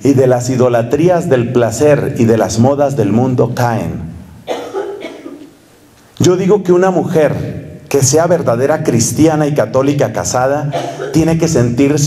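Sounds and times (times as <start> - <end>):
person coughing: 4.4 - 5.5, 10.7 - 11.3.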